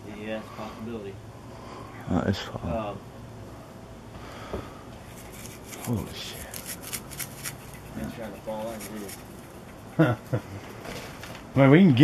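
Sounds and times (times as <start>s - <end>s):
faint hum: 0.0s - 10.8s.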